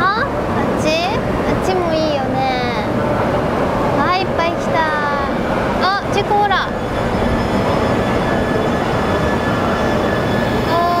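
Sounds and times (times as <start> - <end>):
train running noise: 0.0 - 11.0.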